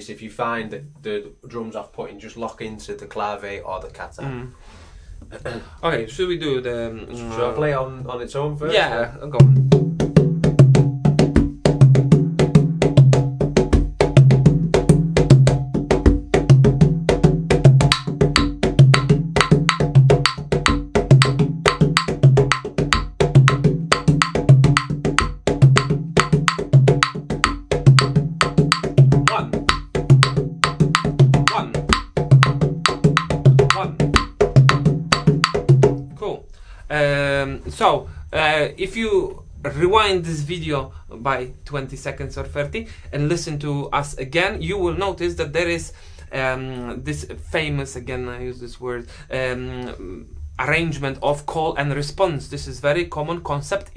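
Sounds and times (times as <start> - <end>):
person speaking: 0.0 - 4.6, 5.3 - 9.6, 29.2 - 29.6, 31.4 - 31.9, 33.5 - 34.0
congas played by hand: 9.4 - 36.2.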